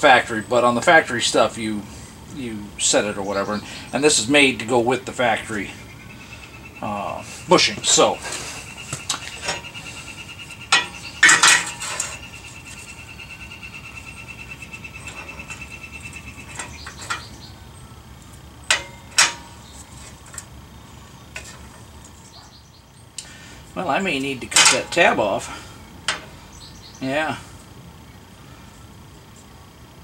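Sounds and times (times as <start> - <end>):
metal parts clinking and scraping: 7.9 - 13.1, 14.4 - 17.5, 18.7 - 20.6, 21.4 - 22.3, 24.5 - 25.1.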